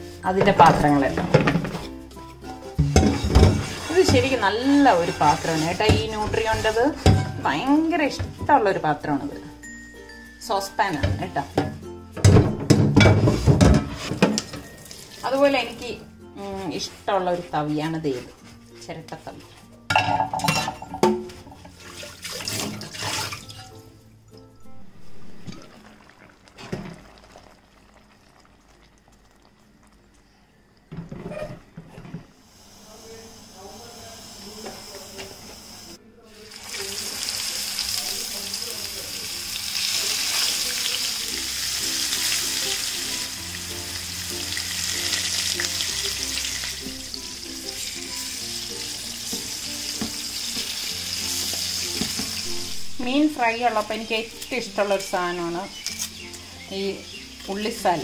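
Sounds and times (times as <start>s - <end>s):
soft background music: 0.0s - 26.3s, 27.0s - 58.0s
fish sizzling in hot oil: 14.4s - 16.0s, 25.1s - 29.8s, 32.4s - 58.0s
tap water running into sink: 20.9s - 23.7s, 25.4s - 28.3s.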